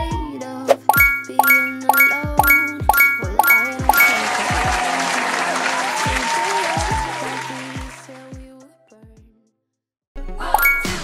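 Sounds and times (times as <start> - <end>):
applause and cheering: 3.8 - 8.4.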